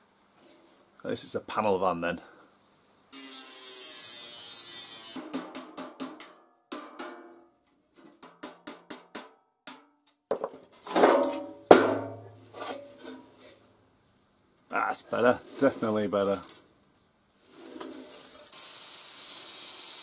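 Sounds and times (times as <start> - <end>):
angle grinder cutting steel: 3.2 - 5.2, 18.3 - 20.0
metal knocks and clanks: 5.4 - 13.3.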